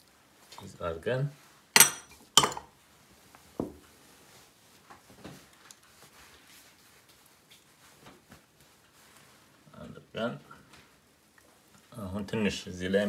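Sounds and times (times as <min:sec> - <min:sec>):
faint handling sounds: 0:00.0 - 0:12.0
glass bowl set down: 0:01.8 - 0:02.7.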